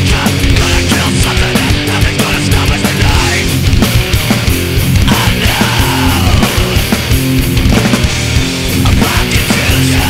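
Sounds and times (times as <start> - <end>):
sludge metal band playing: 0.0 - 10.0.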